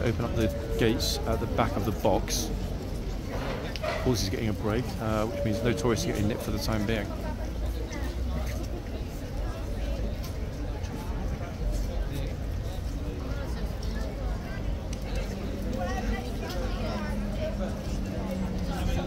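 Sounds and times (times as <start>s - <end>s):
chatter of passers-by: 0.0s - 19.0s
low traffic rumble: 0.0s - 19.0s.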